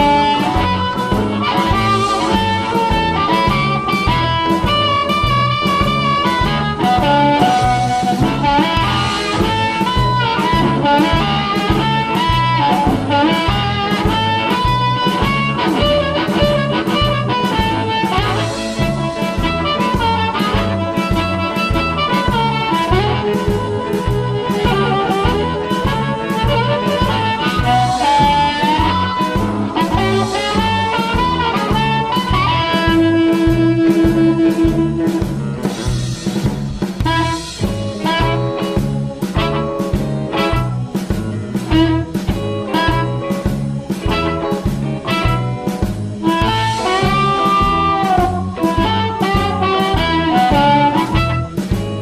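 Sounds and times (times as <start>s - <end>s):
amplified blues harmonica: 0.0s - 52.0s
bass and drums backing: 0.0s - 52.0s.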